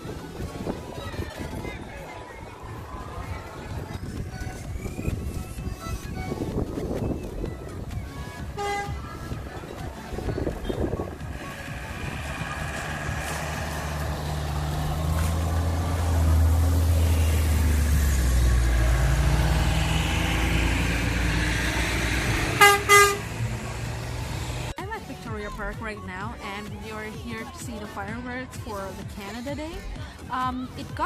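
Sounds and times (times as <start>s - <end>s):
trucks driving past: 0.0s - 31.0s
short horn toots: 22.6s - 23.4s.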